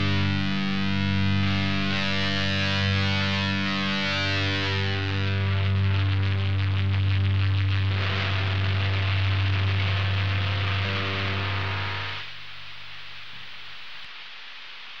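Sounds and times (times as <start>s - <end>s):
low distorted guitar drone: 0.0s - 12.8s
amplifier hiss and hum: 0.0s - 15.0s.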